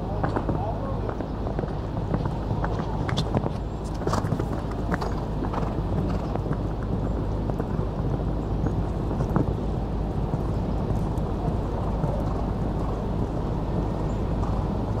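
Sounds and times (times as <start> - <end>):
horse hoofbeats on sand: 0.0 - 15.0
low rumble: 0.0 - 15.0.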